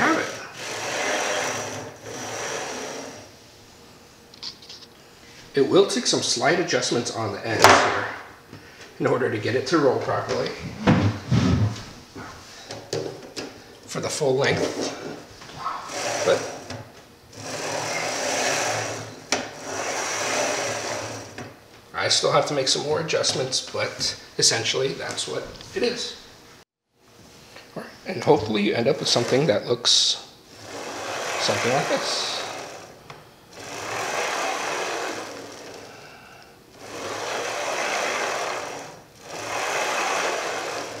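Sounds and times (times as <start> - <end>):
ball bearings rolling on metal rails: 0.0 - 3.3, 15.9 - 16.7, 17.4 - 21.4, 30.6 - 35.9, 36.8 - 41.0
sharp knock: 7.6 - 8.2.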